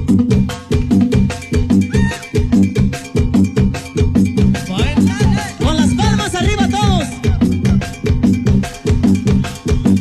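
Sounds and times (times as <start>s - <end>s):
quick percussion beat: 0.0s - 10.0s.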